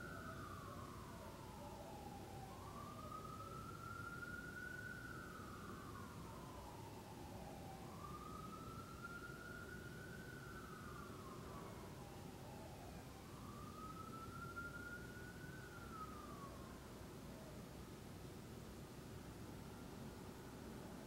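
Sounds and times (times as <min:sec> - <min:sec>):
distant siren wailing: 0:00.0 - 0:17.7.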